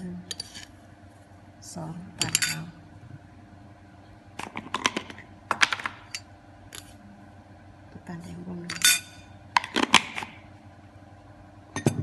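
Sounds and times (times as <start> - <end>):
metal spoon clinking ceramic bowl: 2.2 - 2.7.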